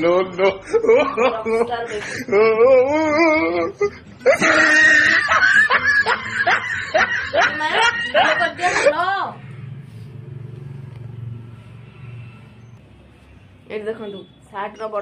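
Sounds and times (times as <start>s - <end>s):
woman laughing: 0.4s - 2.6s, 3.2s - 9.2s.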